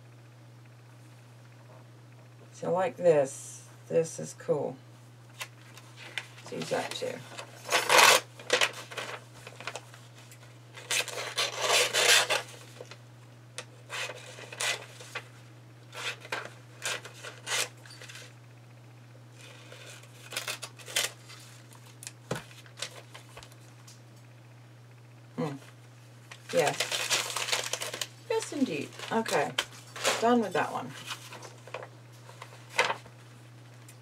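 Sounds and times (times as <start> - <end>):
paper pages rustling and ripping: 5.4 - 13.0, 13.9 - 15.3, 15.9 - 18.3, 19.4 - 23.6, 26.3 - 33.2.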